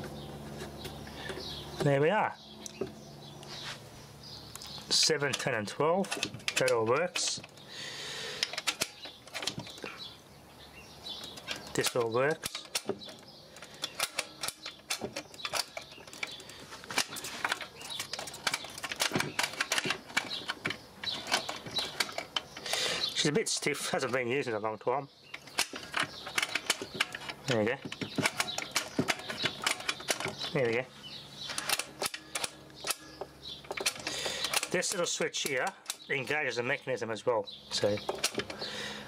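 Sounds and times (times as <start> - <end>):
plastic levers clicking: 4.6 - 7.7, 8.3 - 10.0, 11.1 - 24.4, 25.3 - 30.8, 31.4 - 36.4, 37.7 - 38.7.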